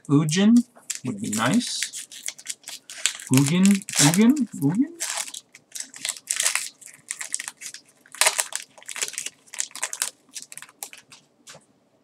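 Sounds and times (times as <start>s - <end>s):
trading cards rustling and snapping: 0.8s - 11.6s.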